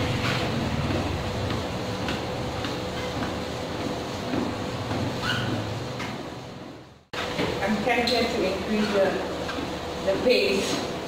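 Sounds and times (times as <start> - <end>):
footsteps on treadmill belt: 0.0 - 11.0
treadmill motor hum and whine: 0.0 - 11.0.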